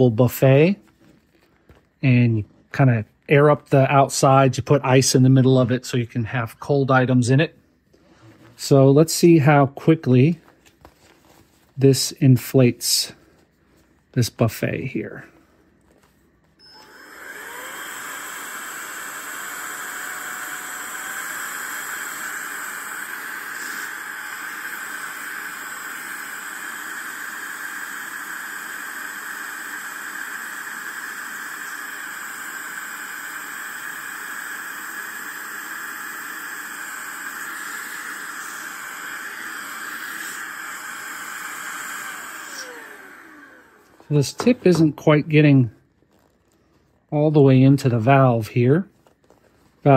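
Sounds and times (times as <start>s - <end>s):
air duster fan motor running: 16.6s - 45.4s.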